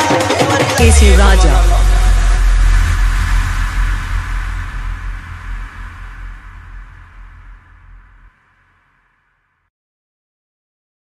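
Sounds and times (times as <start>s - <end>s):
deep electronic bass tone: 0.8s - 8.3s
hissing noise: 0.8s - 8.7s.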